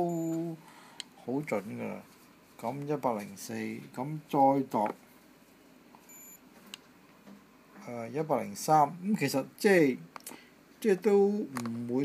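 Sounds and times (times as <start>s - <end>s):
short high gauge beep: 0.0s - 0.5s, 6.1s - 6.4s.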